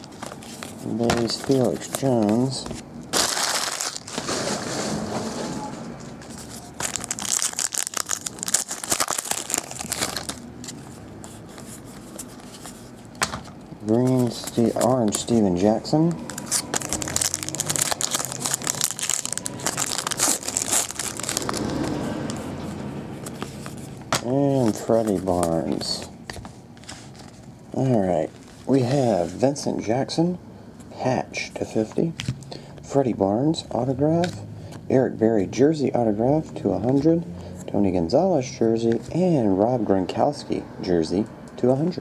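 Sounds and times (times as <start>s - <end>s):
foil wrappers crinkling: 0.0s - 4.8s, 6.3s - 10.7s, 16.3s - 22.0s.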